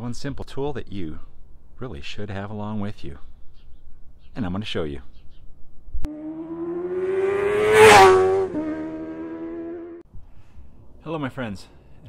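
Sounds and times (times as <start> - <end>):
vehicle engine revving past: 6.1 - 10.0.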